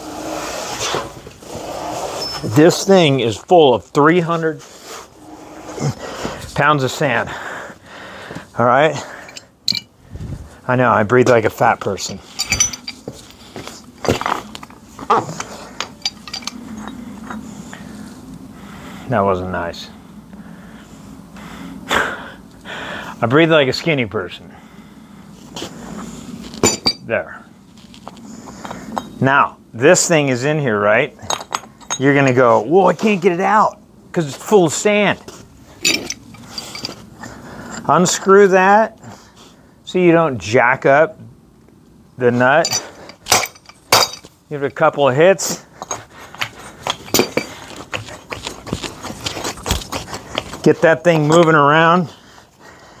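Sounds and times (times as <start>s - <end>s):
metal parts clinking: 9.2s - 10.0s, 11.9s - 17.4s, 26.5s - 27.1s, 31.2s - 32.4s, 35.8s - 37.1s, 42.6s - 44.8s, 45.8s - 48.0s.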